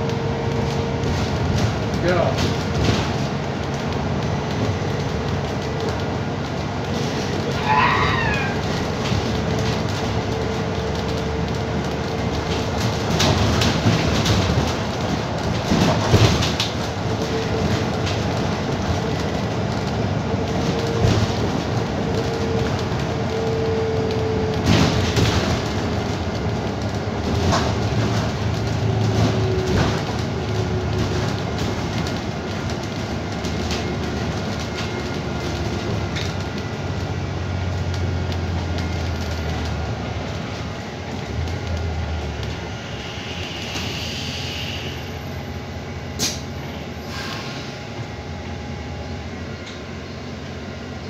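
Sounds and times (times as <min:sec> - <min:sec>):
bus running rumble: 0:00.0 - 0:51.0.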